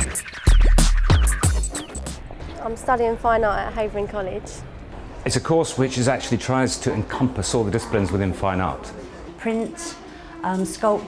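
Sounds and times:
turntable scratch sounds: 0.0s - 2.5s
electronic intro music: 0.0s - 2.6s.

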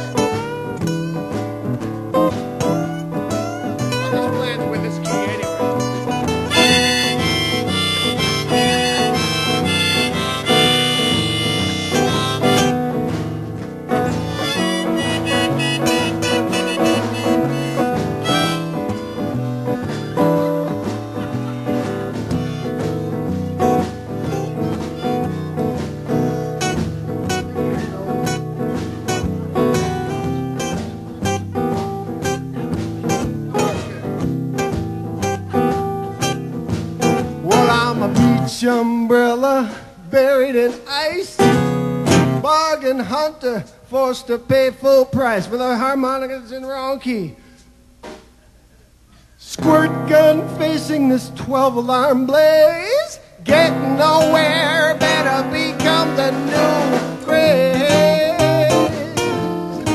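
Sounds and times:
strummed acoustic guitars: 0.0s - 43.7s, 49.4s - 59.9s
harmonica bent notes: 2.7s - 13.4s, 14.0s - 28.5s, 53.5s - 59.9s.

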